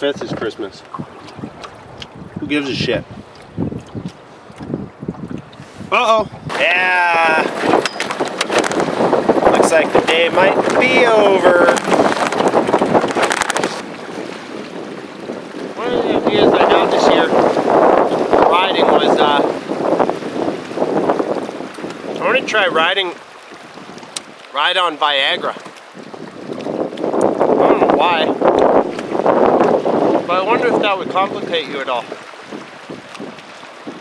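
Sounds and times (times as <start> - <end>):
choppy water: 0.0 - 34.0
wind buffeting microphone: 0.0 - 34.0
man's voice: 5.9 - 7.6, 9.6 - 11.8, 15.8 - 17.3, 30.3 - 32.1.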